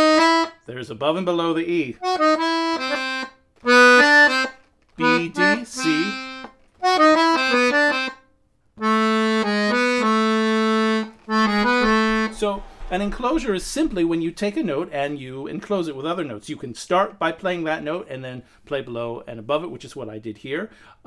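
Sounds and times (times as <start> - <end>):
accordion playing short phrases: 2.0 - 8.2.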